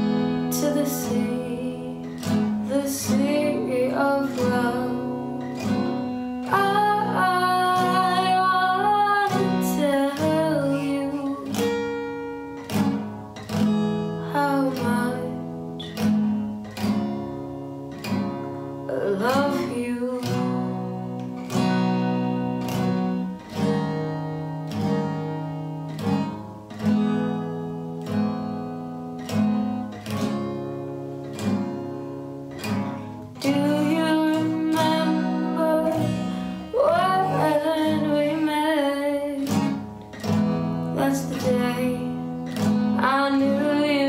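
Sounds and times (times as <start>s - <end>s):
woman singing: 0.0s - 12.0s, 14.2s - 15.5s, 18.9s - 21.0s, 33.4s - 39.8s, 40.7s - 44.0s
acoustic guitar strumming: 0.0s - 44.0s.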